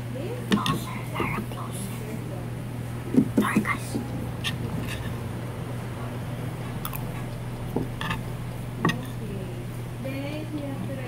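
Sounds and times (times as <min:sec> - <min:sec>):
steady low hum: 0:00.0 - 0:11.0
people whispering: 0:00.5 - 0:02.3, 0:03.4 - 0:05.1
utensils clicking on plate: 0:06.7 - 0:09.2.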